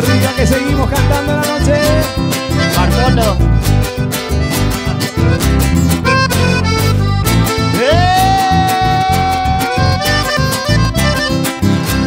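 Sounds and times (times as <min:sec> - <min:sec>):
accordion: 0:00.0 - 0:12.0
live band playing: 0:00.0 - 0:12.0
singer shouting into held note: 0:07.8 - 0:10.0.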